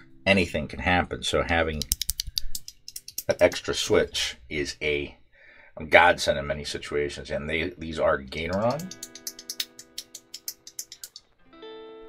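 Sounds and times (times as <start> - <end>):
guitar music: 8.3 - 12.0.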